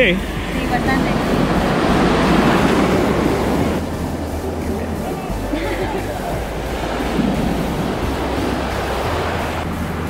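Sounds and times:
ocean surf breaking on sand: 0.0 - 10.0.

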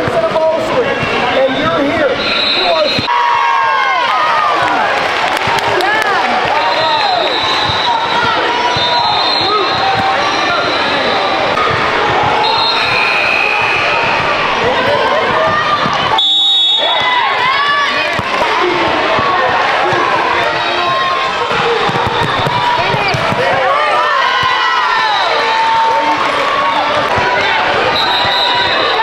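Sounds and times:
murmur of voices: 0.0 - 29.0
basketball bouncing: 7.4 - 10.3, 11.5 - 12.7, 13.4 - 25.0, 26.9 - 28.8
sneakers squeaking on court: 20.9 - 23.6.

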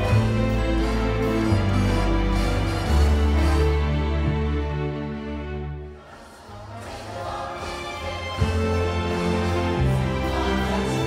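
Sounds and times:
large choir singing: 0.0 - 5.0, 5.8 - 11.0
instrumental accompaniment: 0.0 - 11.0.

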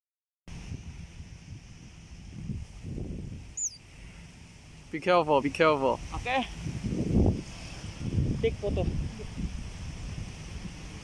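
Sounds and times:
wind rumble on microphone: 0.5 - 11.0
high bird chirp: 3.6 - 3.8.

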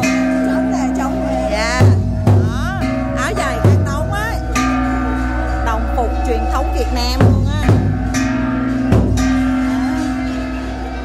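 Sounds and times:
drum and gong struck: 0.0 - 11.0
steady ringing tones: 0.0 - 11.0.

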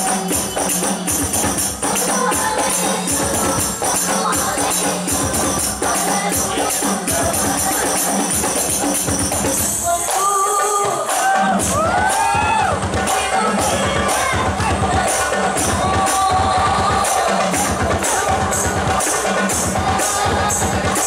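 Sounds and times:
frame drums and jingles: 0.0 - 21.0
women singing into microphones: 0.0 - 21.0.

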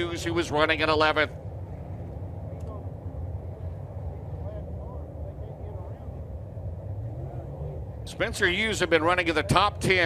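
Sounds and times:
race car engines rumbling: 0.0 - 10.0.

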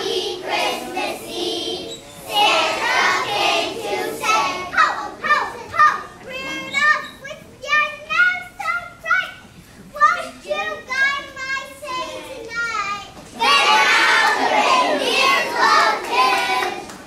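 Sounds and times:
young children chattering: 4.0 - 15.8.

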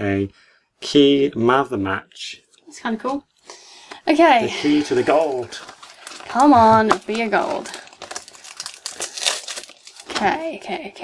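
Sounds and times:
foil packaging crinkling: 4.6 - 10.5.

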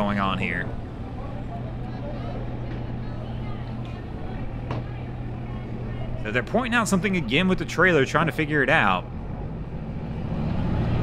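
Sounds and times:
faint distant voices: 0.0 - 9.0
low engine hum: 0.0 - 11.0.

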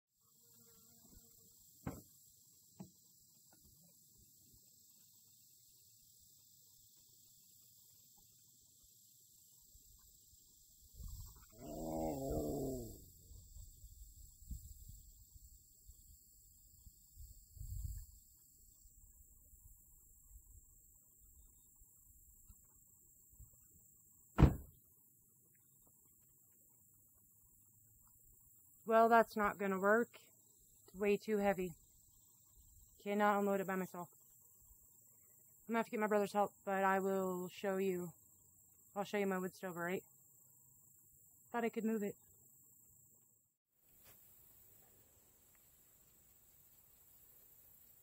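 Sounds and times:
dull thump: 1.8 - 2.2, 24.4 - 24.8.

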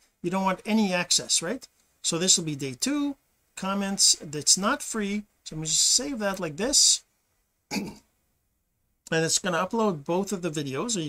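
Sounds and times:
man clearing his throat: 7.7 - 8.1.

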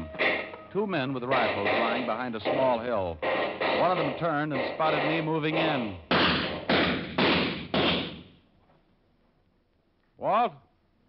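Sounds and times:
gunshot cracks: 5.6 - 8.3.

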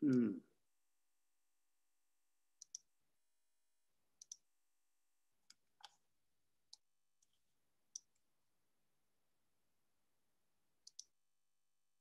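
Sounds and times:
faint computer mouse clicks: 2.6 - 2.9, 4.2 - 4.4, 10.8 - 11.1.

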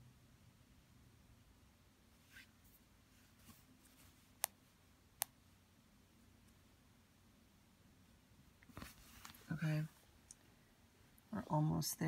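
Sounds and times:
smartphone rustle: 8.6 - 9.5
woman speaking: 9.4 - 10.0, 11.3 - 12.0.

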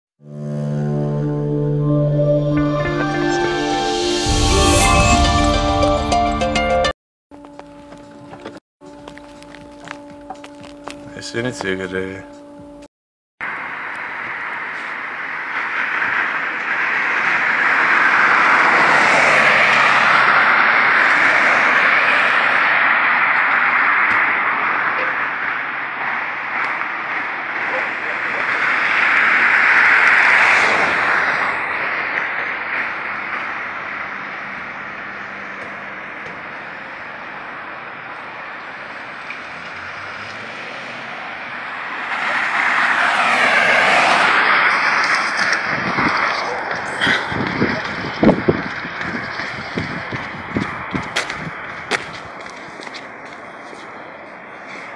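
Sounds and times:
road traffic passing: 0.2 - 54.9.

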